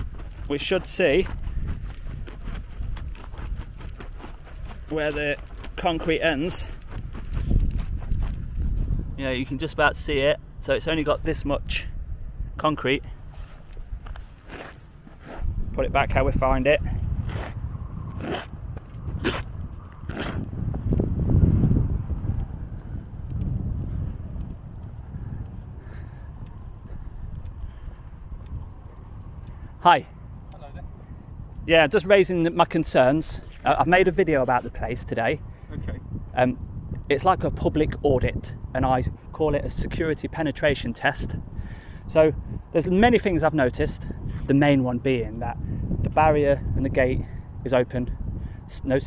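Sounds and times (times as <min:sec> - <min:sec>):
footsteps along path: 0:00.0 - 0:09.2, 0:13.2 - 0:15.7, 0:16.4 - 0:31.5
shoe scraping grit: 0:13.3 - 0:21.1.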